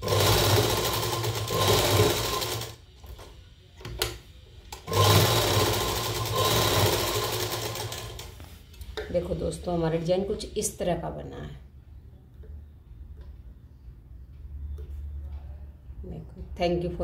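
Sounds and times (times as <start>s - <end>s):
sewing machine stitching: 0.0s - 2.8s, 4.8s - 8.3s.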